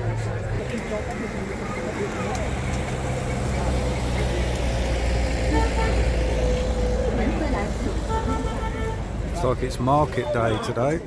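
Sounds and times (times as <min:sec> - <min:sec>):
people talking: 0:00.0 - 0:06.0, 0:07.0 - 0:08.6, 0:09.3 - 0:11.0
vehicle engine running: 0:00.0 - 0:09.8.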